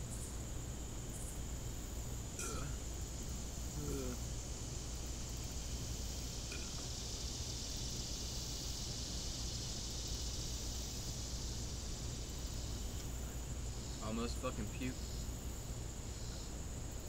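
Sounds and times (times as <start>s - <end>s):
high-pitched insect chorus: 0.0s - 17.0s
low steady rumble: 0.0s - 17.0s.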